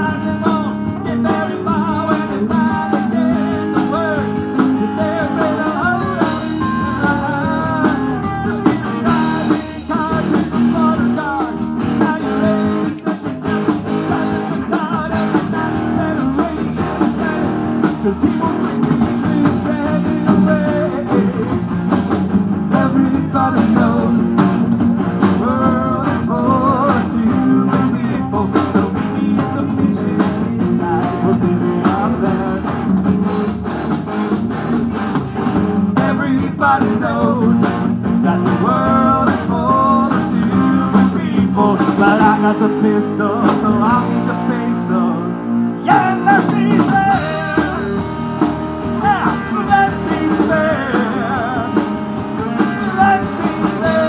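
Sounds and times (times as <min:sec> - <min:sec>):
lead guitar with bent notes: 0:00.0 - 0:54.0
rock band playing: 0:00.0 - 0:54.0.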